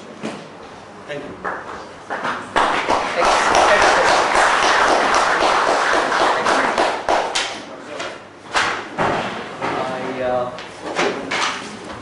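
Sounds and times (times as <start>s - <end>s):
audience applauding: 2.6s - 7.4s.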